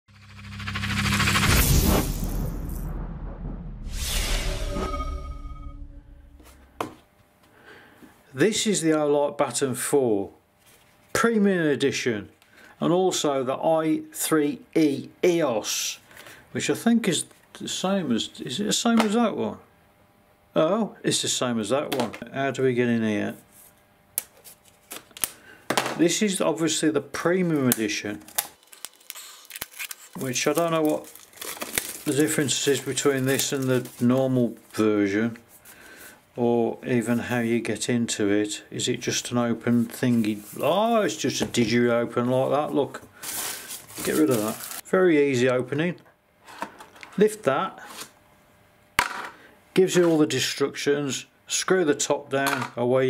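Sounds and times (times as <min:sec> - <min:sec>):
low synth drone: 0:00.0 - 0:06.8
fluttering synth hiss: 0:00.1 - 0:02.9
cardboard rustle: 0:28.8 - 0:34.4, 0:43.2 - 0:44.8.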